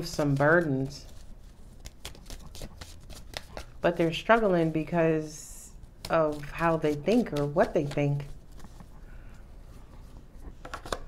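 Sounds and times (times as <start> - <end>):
cards being shuffled: 0.0 - 4.8, 5.8 - 9.0, 10.1 - 11.0.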